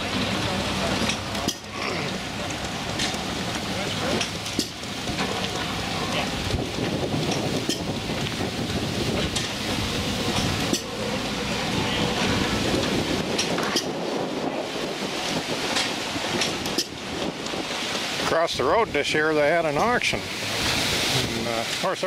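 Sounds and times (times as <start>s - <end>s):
wind buffeting microphone: 4.3s - 21.8s.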